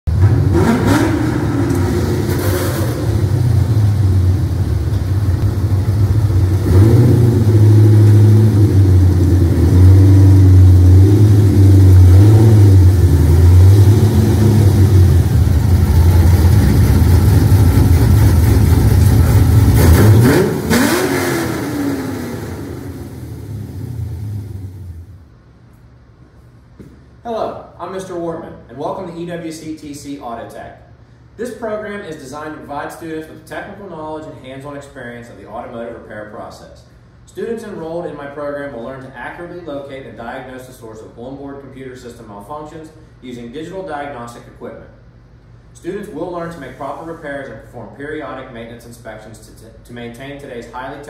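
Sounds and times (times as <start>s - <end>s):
car engine revving: 0.1s - 25.2s.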